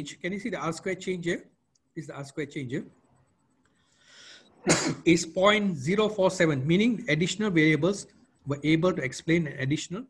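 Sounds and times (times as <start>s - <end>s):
man breathing in: 3.8s - 4.6s
man coughing: 4.6s - 5.1s.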